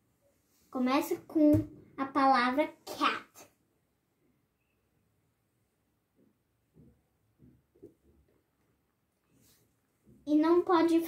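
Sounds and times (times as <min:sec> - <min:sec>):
child speaking: 0:00.8 - 0:03.6, 0:10.3 - 0:11.0.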